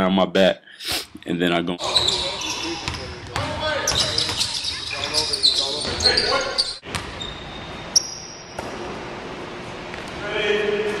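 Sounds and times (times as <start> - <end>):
man talking: 0.0 - 6.6
basketball bouncing on gym floor: 2.8 - 4.5.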